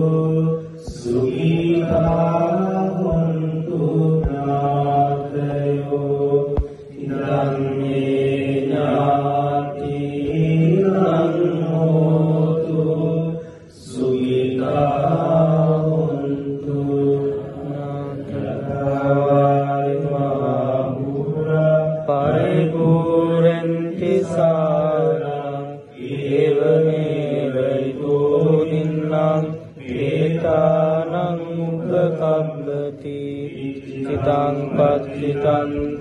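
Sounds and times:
monks chanting in monotone: 0:00.0 - 0:36.0.

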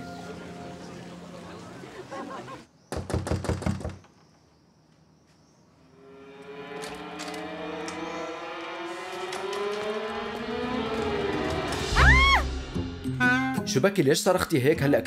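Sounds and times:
knocking on wooden door: 0:02.9 - 0:04.0
music with rising tones: 0:06.0 - 0:13.7.

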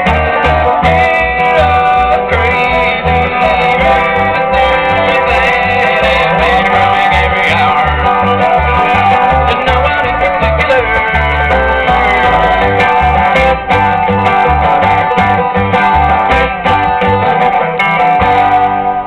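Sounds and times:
acoustic guitar: 0:00.0 - 0:19.0
banjo: 0:00.0 - 0:19.0
mandolin: 0:00.0 - 0:19.0
upright bass: 0:00.0 - 0:19.0.

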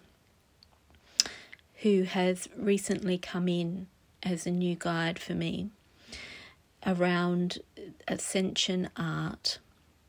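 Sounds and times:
breath in: 0:01.1 - 0:01.6, 0:06.0 - 0:06.6
sharp mouth click: 0:01.2 - 0:01.6
woman speaking: 0:01.8 - 0:05.8, 0:06.8 - 0:09.6.

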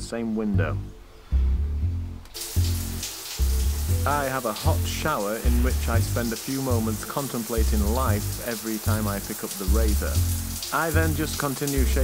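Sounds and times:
music with deep bass notes: 0:00.0 - 0:12.0
shower water spray: 0:02.3 - 0:12.0.

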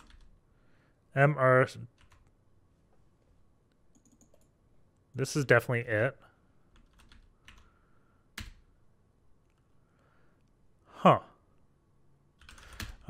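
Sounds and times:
keystrokes on computer keyboard: 0:00.0 - 0:00.3, 0:02.0 - 0:02.4, 0:03.9 - 0:04.6, 0:06.7 - 0:07.7, 0:08.4 - 0:08.7, 0:12.4 - 0:13.0.

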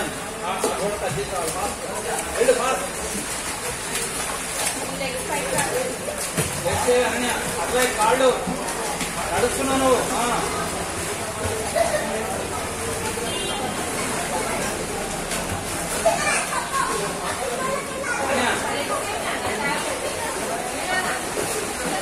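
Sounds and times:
children calling and chattering: 0:00.0 - 0:22.0
swimmers splashing in pool: 0:00.0 - 0:22.0
sharp splash or knock: 0:05.5 - 0:09.2.

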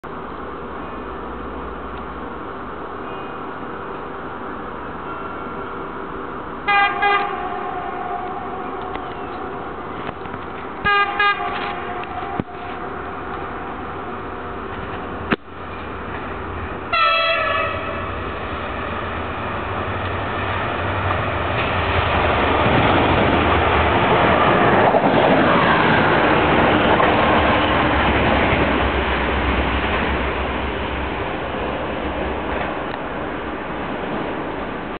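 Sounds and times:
locomotive rumbling: 0:00.1 - 0:34.9
train running noise: 0:00.1 - 0:34.9
locomotive horn blasts: 0:06.6 - 0:09.0, 0:10.8 - 0:12.8, 0:16.9 - 0:18.1.

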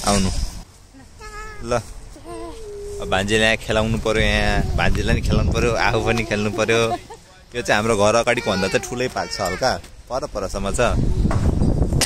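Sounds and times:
child's high-pitched calls: 0:01.0 - 0:03.3, 0:08.2 - 0:09.8.

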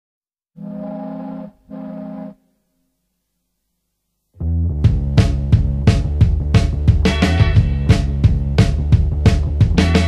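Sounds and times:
low ship's horn blasts: 0:00.6 - 0:02.5.

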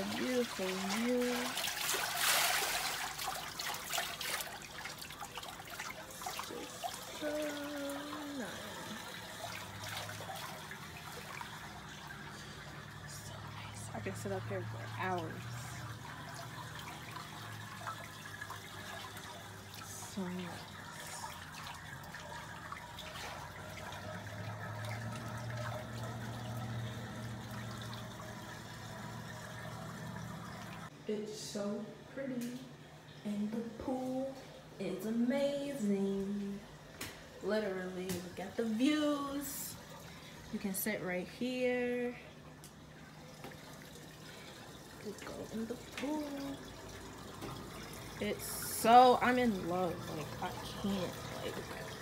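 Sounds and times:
water trickling in a pool: 0:00.0 - 0:31.0, 0:32.4 - 0:52.0.

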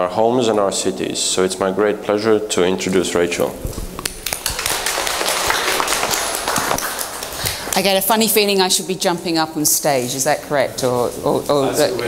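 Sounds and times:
audience applauding: 0:04.0 - 0:07.8.

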